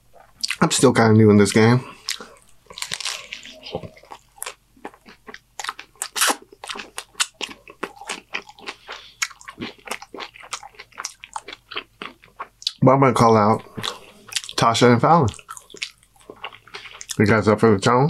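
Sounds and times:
wet chewing: 1.5 - 17.2
crunching of hard taco shell: 2.0 - 12.6.

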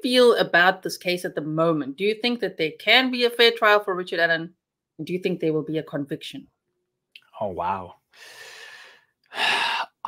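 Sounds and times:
man breathing: 8.1 - 9.9.

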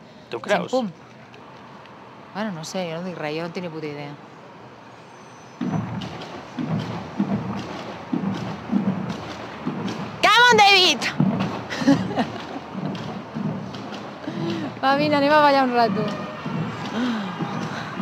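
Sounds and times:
low street noise: 0.0 - 18.0
man and woman talking: 0.3 - 1.0.

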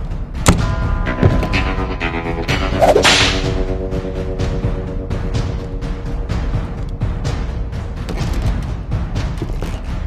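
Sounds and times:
dramatic orchestral film score: 0.0 - 10.0
sharp swishing crack: 2.8 - 3.6.

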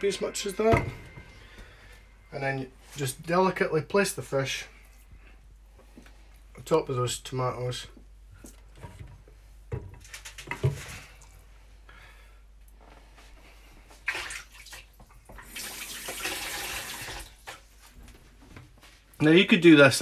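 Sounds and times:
kitchen tap running: 14.1 - 17.6.

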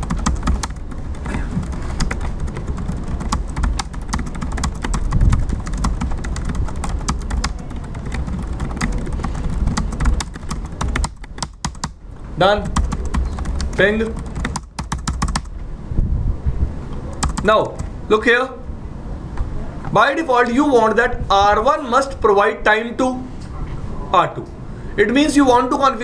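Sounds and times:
computer keyboard typing: 0.0 - 15.6, 17.1 - 18.0.

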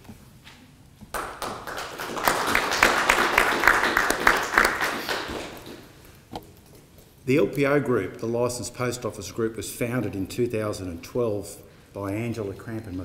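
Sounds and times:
small audience applauding: 1.1 - 6.0.

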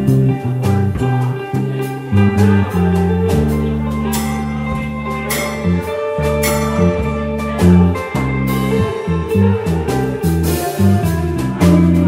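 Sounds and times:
drum kit with cymbals: 0.0 - 12.0
electric guitar: 0.0 - 12.0
upright bass: 0.0 - 12.0.

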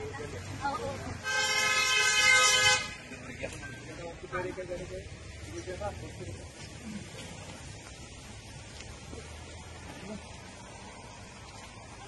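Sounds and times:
vehicle horn blast: 1.2 - 3.0.

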